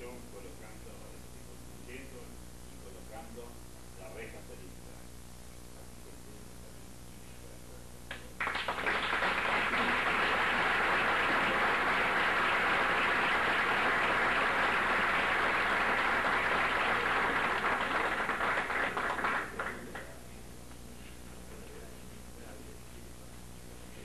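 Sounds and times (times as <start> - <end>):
audience applauding: 8.4 - 20.1.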